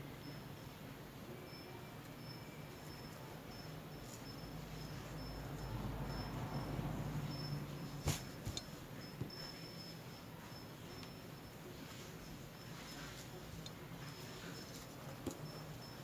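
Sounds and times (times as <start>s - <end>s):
faint low hum: 0.0s - 16.0s.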